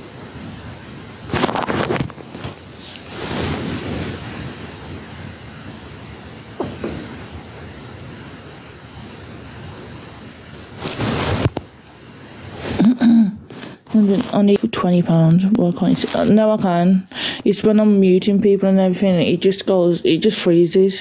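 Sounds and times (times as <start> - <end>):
steady rushing noise: 0.0 - 12.8
rustling: 1.3 - 4.6, 10.7 - 11.6.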